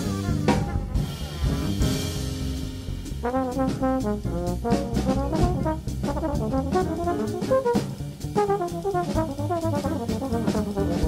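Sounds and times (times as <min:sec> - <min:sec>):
trumpet: 0:00.0 - 0:02.4, 0:03.2 - 0:11.0
drum kit with cymbals: 0:00.0 - 0:11.0
trombone: 0:00.0 - 0:11.0.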